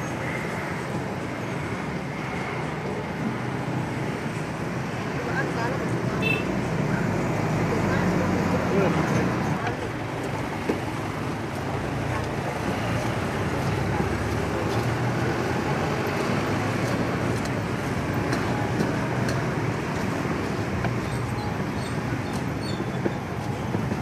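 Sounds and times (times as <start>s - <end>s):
road traffic: 0.0s - 24.0s.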